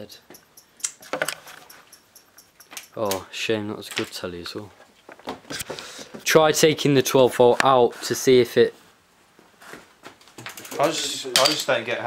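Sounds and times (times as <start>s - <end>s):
television chirping ticks: 0.0s - 1.0s, 1.6s - 3.0s.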